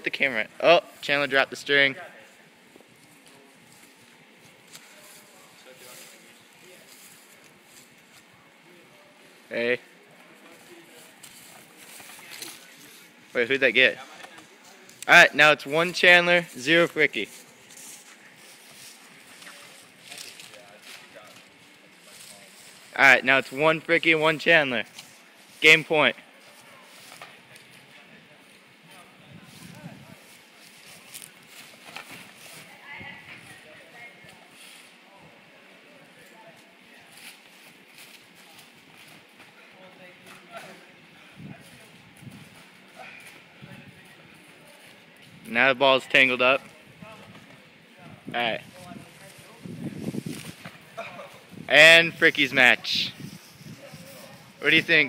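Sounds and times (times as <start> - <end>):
faint voices outdoors: 0.0 - 55.0.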